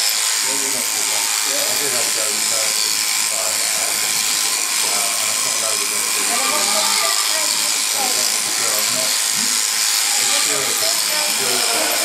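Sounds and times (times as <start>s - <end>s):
sheep shears buzzing: 0.0s - 12.0s
voices talking: 0.4s - 12.0s.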